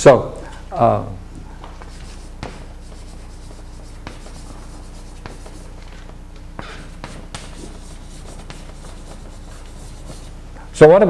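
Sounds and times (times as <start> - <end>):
chalk tapping against board: 1.7 - 10.4
chalk scratching on blackboard: 1.8 - 10.4.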